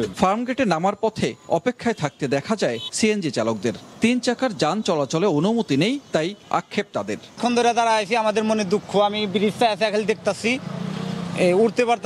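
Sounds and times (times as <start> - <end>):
man speaking: 0.0 - 10.6, 11.4 - 12.0.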